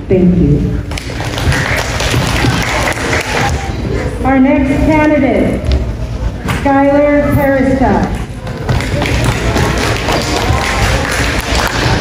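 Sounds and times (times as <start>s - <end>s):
audience applauding: 1.0s - 3.7s, 8.7s - 12.0s.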